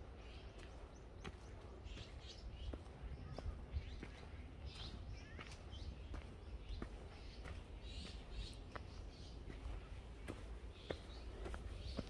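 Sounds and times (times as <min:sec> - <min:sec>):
faint bird chirps: 0:00.0 - 0:12.0
footsteps on forest trail: 0:00.0 - 0:12.0.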